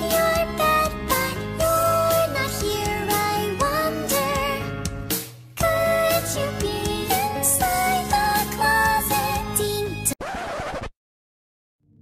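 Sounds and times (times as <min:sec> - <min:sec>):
upbeat music: 0:00.0 - 0:10.1
record scratch sound effect: 0:10.2 - 0:10.9.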